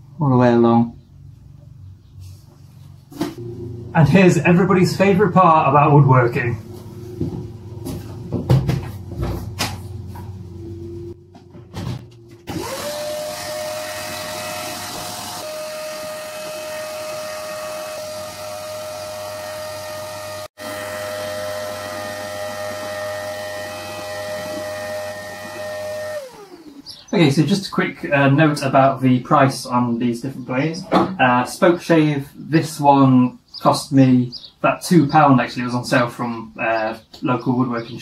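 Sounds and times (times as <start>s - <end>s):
vacuum cleaner motor whine: 3.4s - 5.2s, 12.3s - 27.0s.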